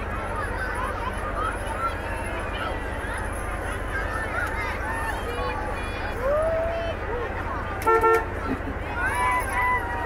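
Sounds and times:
crowd voices: 0:00.0 - 0:10.0
car horn tooting: 0:07.8 - 0:08.4.

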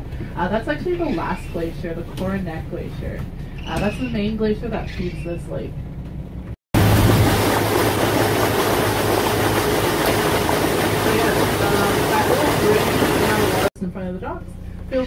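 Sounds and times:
boat motor noise: 0:01.1 - 0:13.8
low engine hum: 0:05.4 - 0:15.0.

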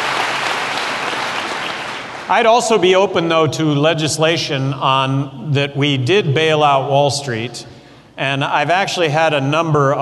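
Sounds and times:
audience applauding: 0:00.0 - 0:02.8.

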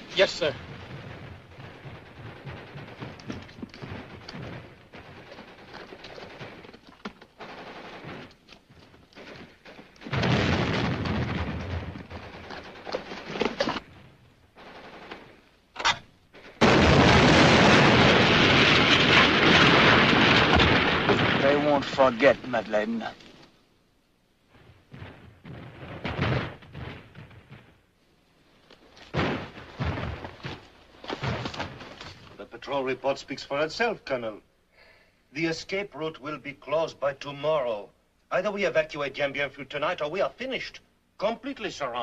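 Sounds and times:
loud explosions: 0:00.0 - 0:06.6, 0:10.0 - 0:12.8, 0:16.6 - 0:23.1, 0:24.5 - 0:27.9, 0:29.1 - 0:31.9
gunfire: 0:00.2 - 0:13.9, 0:14.5 - 0:16.0, 0:16.6 - 0:22.4, 0:24.5 - 0:27.8, 0:29.1 - 0:32.2.

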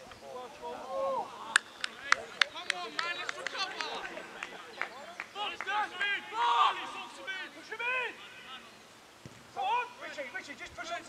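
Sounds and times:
voices shouting: 0:00.2 - 0:08.8.

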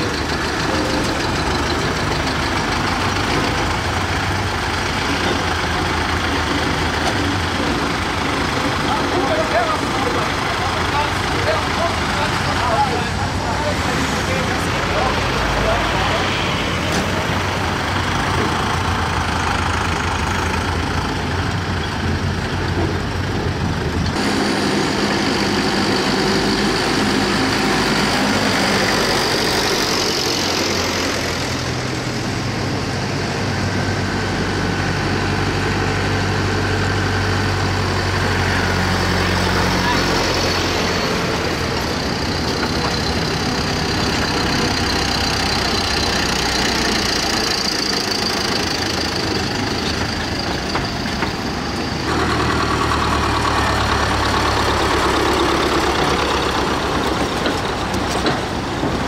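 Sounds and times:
tractors driving past: 0:00.0 - 0:59.0.

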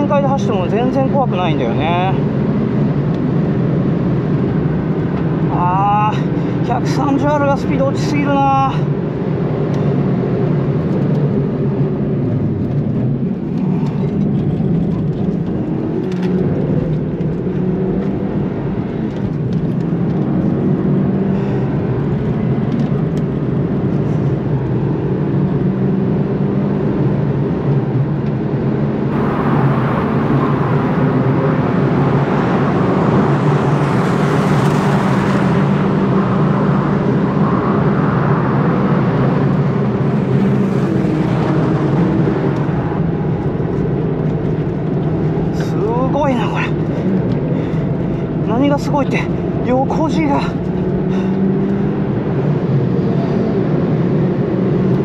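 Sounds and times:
car engine running hard: 0:00.0 - 0:55.0
road noise: 0:00.0 - 0:55.0.

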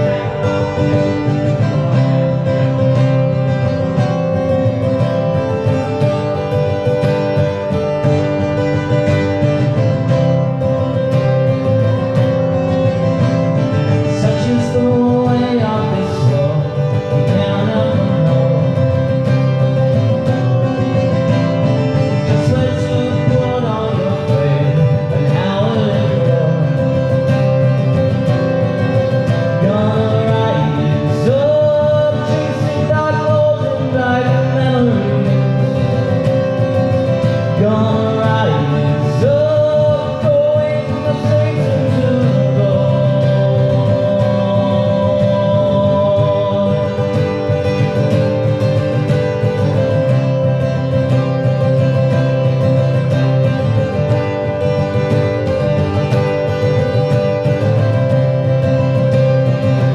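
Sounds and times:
man singing: 0:00.0 - 0:54.0
acoustic guitar strumming: 0:00.0 - 0:59.9.

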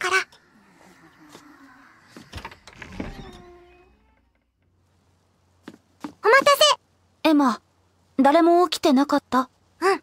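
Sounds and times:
door creaking: 0:01.3 - 0:04.8.

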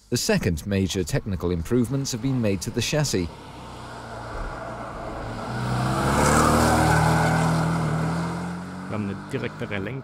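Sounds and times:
car engine accelerating: 0:01.6 - 0:10.0.

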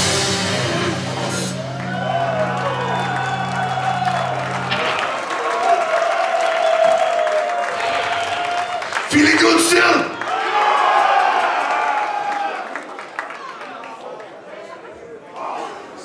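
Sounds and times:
metal band playing live: 0:00.0 - 0:05.4.

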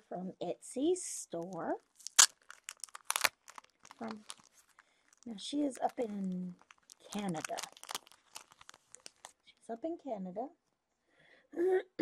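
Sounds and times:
plastic sleeve crinkling: 0:01.3 - 0:09.4.

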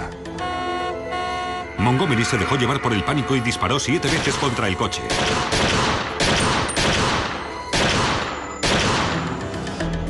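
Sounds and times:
gunshots ringing: 0:04.0 - 0:09.3.

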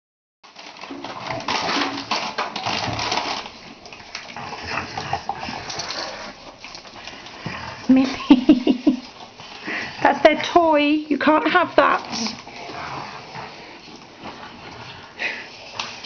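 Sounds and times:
dogs scuffling on hard floor: 0:00.5 - 0:16.0.

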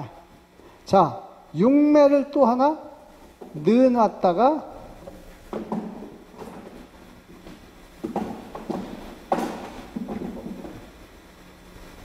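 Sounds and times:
wooden frames knocking and scraping: 0:05.0 - 0:10.9.

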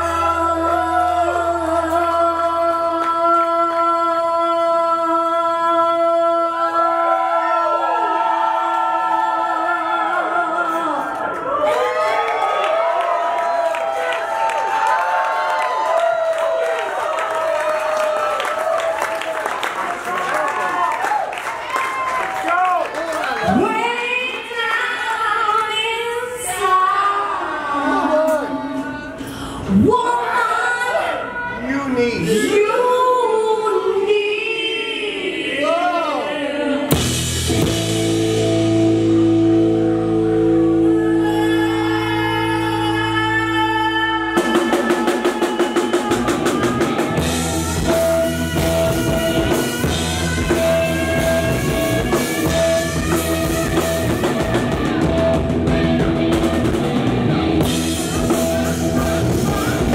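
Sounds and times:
woman singing: 0:00.0 - 0:11.3, 0:23.5 - 0:31.5, 0:32.2 - 0:37.0, 0:40.7 - 0:55.2
woman's wordless wailing vocals: 0:00.0 - 0:11.4, 0:40.8 - 0:47.9
live rock band: 0:36.9 - 0:59.9.

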